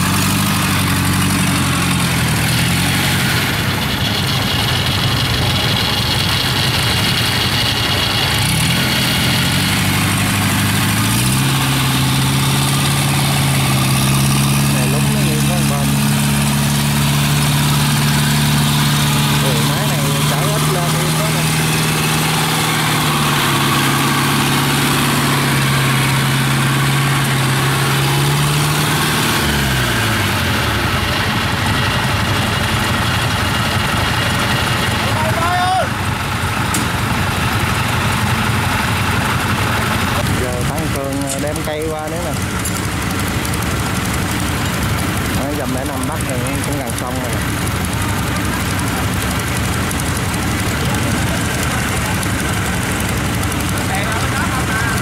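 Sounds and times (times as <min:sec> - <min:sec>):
tracked vehicle engine revving: 0:00.0 - 0:55.0.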